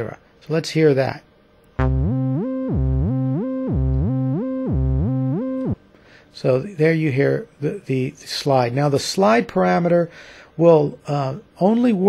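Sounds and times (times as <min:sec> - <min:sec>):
synthesizer bass arpeggio: 0:01.8 - 0:05.8.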